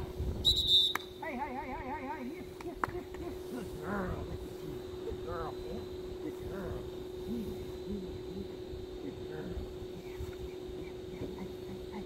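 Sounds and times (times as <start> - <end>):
dog-training whistle blast: 0.4 - 1.1
man's warbling call: 1.2 - 9.8.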